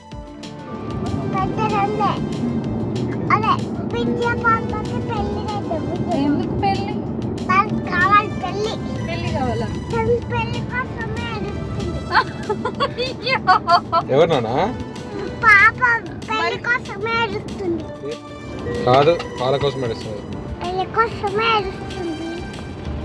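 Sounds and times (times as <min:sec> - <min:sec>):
background music: 0:00.0 - 0:23.0
car cabin rumble: 0:00.6 - 0:17.8
woman's voice: 0:05.5 - 0:07.0, 0:11.9 - 0:14.0.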